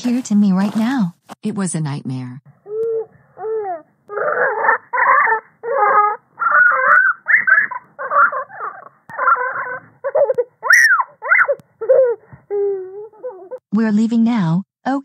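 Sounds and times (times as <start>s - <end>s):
child sobbing: 2.6s - 7.1s, 8.0s - 10.6s, 11.2s - 13.6s
child wailing: 2.7s - 13.6s.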